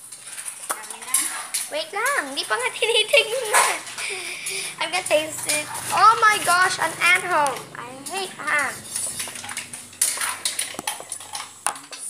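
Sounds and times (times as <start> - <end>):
cookware knocking and clattering: 0.0 - 12.0.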